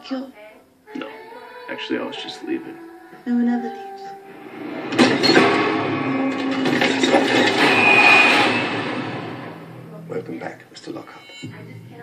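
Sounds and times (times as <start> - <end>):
loud dense rushing noise: 4.2 - 10.1
high-pitched squeal: 4.2 - 11.4.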